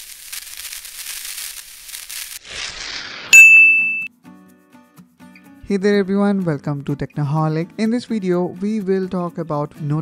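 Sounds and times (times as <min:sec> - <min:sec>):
bright metallic ding: 0:03.4 - 0:04.1.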